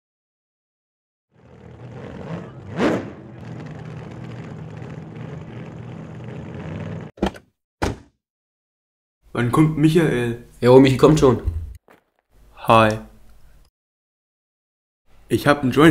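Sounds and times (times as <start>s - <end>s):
car engine running: 1.4s - 7.1s.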